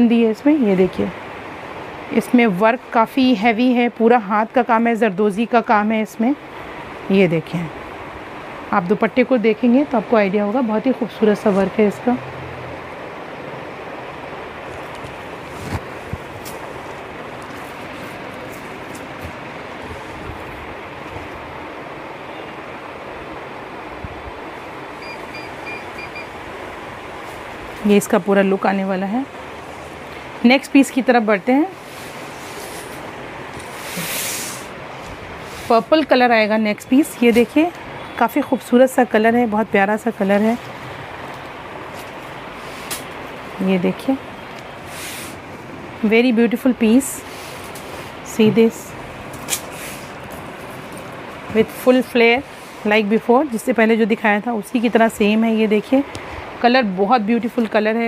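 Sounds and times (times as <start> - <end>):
steady background noise: 0.0 - 58.0
cloth swish: 15.1 - 16.7, 33.6 - 35.8
short high beeps: 25.0 - 26.3.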